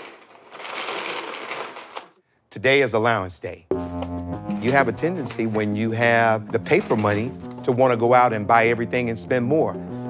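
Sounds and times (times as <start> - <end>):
coins clattering onto wooden table: 0.0 - 2.1.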